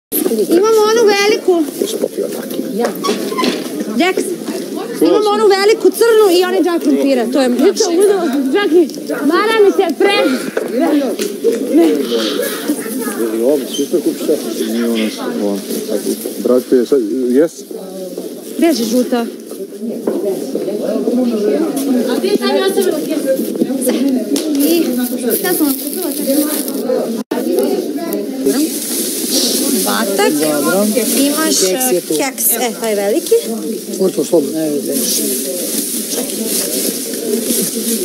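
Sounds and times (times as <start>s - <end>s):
women's voices talking: 0.2s - 1.8s, 2.6s - 13.4s, 17.7s - 33.9s
plastic bags rustling: 21.5s - 38.0s.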